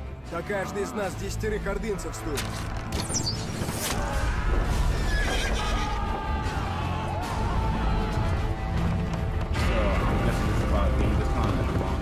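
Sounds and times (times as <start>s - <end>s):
trailer music: 0.0s - 12.0s
horse whinnying: 4.8s - 6.1s.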